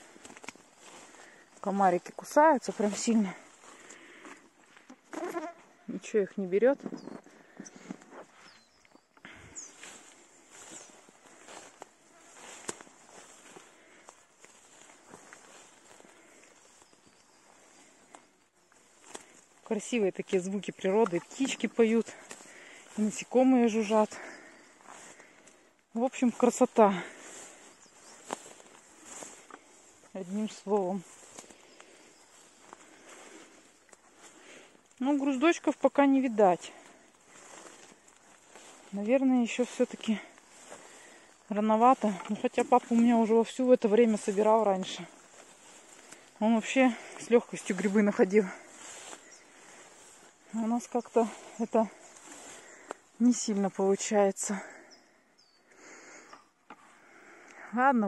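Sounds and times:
distant birdsong: 0.0 - 4.2, 6.6 - 35.9, 36.6 - 57.6
insects buzzing: 0.0 - 6.0, 6.9 - 57.7
footsteps rustling through grass: 0.0 - 55.1
bird chirps: 6.8 - 9.9, 27.6 - 28.3, 54.9 - 56.5.

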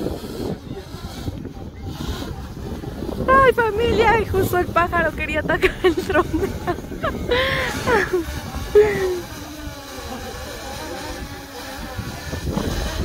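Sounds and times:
drone propellers buzzing: 0.0 - 13.0
wind on microphone: 0.0 - 13.0.

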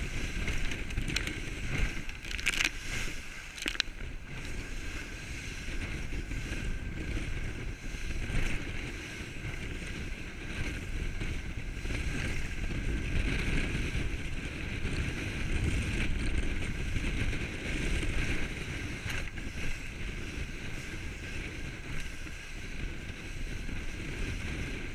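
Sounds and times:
water rushing along boat hull: 0.0 - 24.9
wind buffeting microphone: 0.0 - 24.9.

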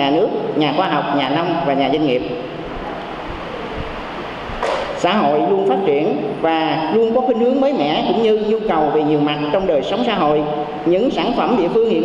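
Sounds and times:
person speaking: 0.0 - 3.7, 4.7 - 12.0
hall and microphone hiss: 0.0 - 12.0.

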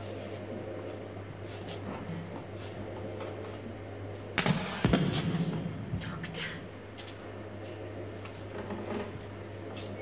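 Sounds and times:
small explosion with bangs: 4.4 - 5.7.

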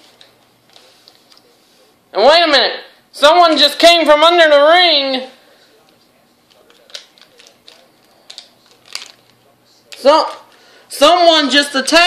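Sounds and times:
plastic toys rustling: 6.5 - 10.5.

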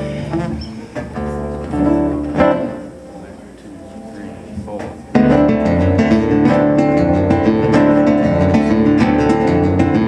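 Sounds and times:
fingerpicked guitars: 0.0 - 10.0.

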